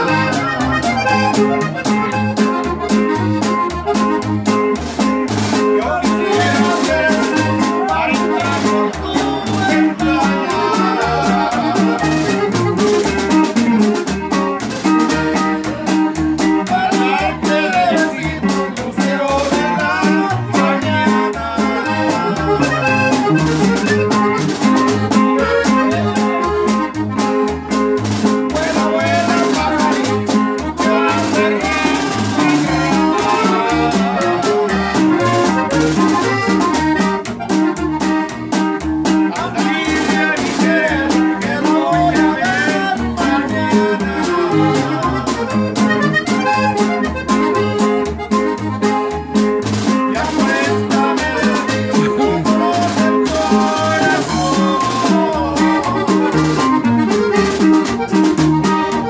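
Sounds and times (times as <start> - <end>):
button accordion melody: 0.0 - 59.0
guitar: 0.0 - 59.0
plucked upright bass: 0.0 - 59.0
snare drum with cymbal: 31.0 - 33.5.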